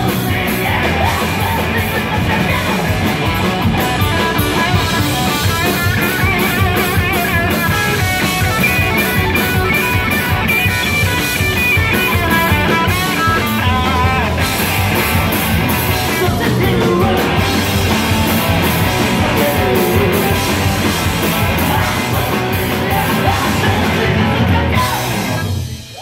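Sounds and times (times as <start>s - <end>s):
bass guitar: 0.0s - 26.0s
distorted electric guitar: 0.0s - 26.0s
drum kit: 0.0s - 26.0s.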